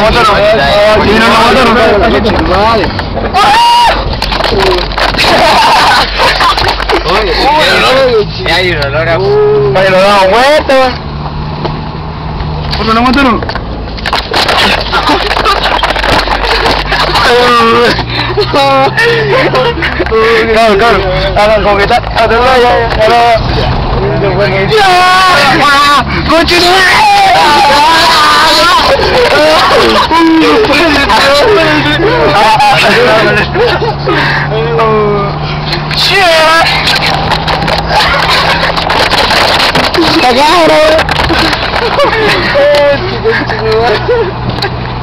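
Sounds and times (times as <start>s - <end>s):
car engine and road noise: 0.0s - 45.0s
people talking and calling out: 0.0s - 45.0s.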